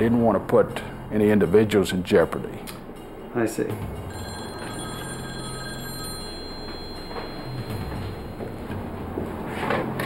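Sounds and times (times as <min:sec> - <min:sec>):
landline telephone ringing: 0:04.1 - 0:08.9.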